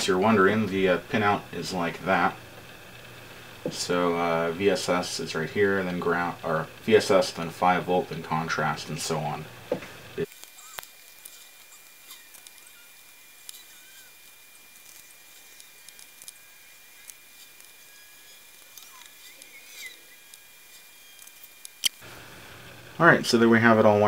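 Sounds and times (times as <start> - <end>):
faint high whine: 0.0 - 24.0.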